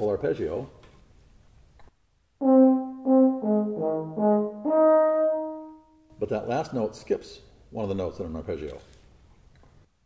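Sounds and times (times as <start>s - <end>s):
euphonium playing: 2.4s - 6.1s.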